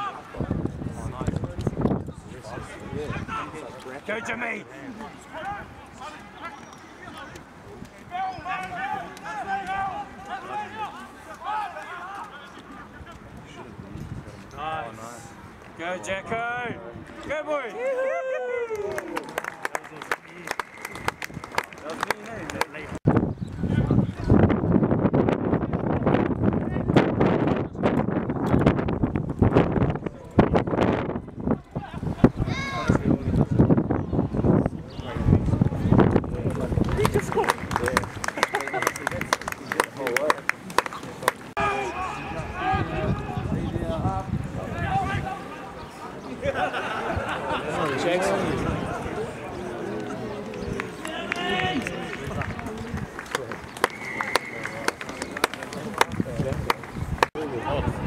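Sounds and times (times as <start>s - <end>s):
wind buffeting microphone: 0.0s - 3.7s, 20.9s - 39.8s, 42.3s - 45.4s, 55.9s - 58.0s
people shouting: 41.6s - 43.4s.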